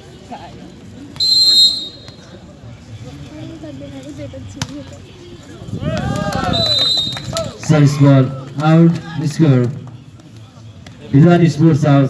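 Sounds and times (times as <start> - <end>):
referee's whistle blast: 1.2 - 2.2.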